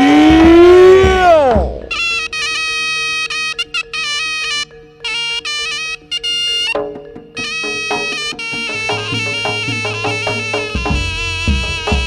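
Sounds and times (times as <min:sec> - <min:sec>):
held low drone note: 0:00.0 - 0:02.8
low gamelan notes: 0:00.0 - 0:12.0
shrill nasal reed melody: 0:00.0 - 0:12.0.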